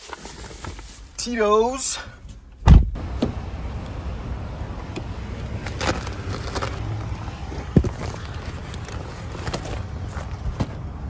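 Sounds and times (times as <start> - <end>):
heavy thump: 2.6 - 3.4.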